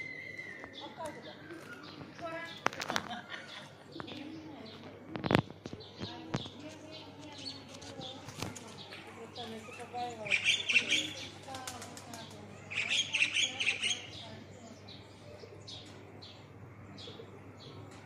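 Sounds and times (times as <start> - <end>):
small birds chirping: 0.0 - 18.0.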